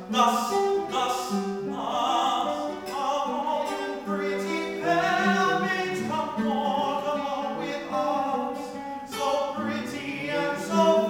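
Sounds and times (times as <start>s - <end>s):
classical guitar: 0.0s - 11.0s
tenor singing classical style: 0.0s - 11.0s.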